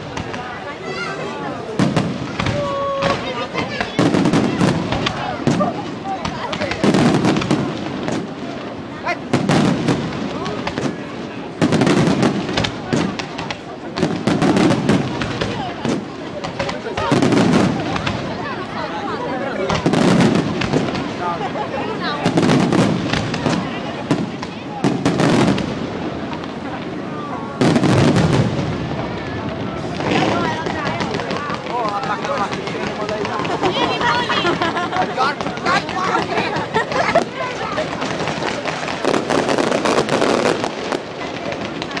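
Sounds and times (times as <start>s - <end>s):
fireworks bangs: 0.0s - 42.0s
fireworks crackling: 0.0s - 42.0s.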